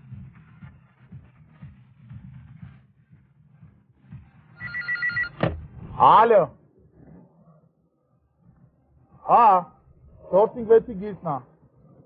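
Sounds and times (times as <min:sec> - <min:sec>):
telephone ringing: 0:04.6 - 0:05.4.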